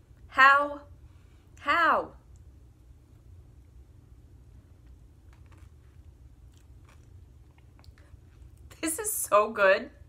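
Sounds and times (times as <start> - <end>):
person chewing: 4.8 - 8.7.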